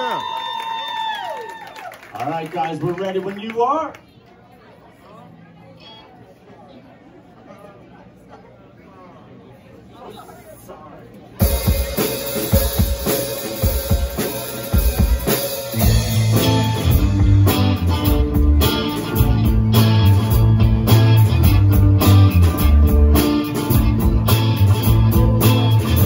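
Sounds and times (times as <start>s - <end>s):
drum kit: 11.4s - 26.0s
electric guitar: 11.4s - 26.0s.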